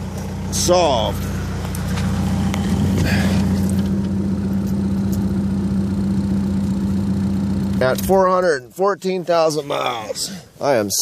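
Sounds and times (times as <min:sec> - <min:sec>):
diesel engine idling: 0:00.0 - 0:09.6.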